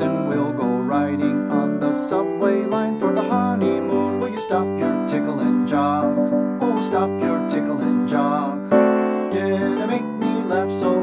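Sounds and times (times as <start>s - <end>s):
lively piano-led music: 0.0s - 11.0s.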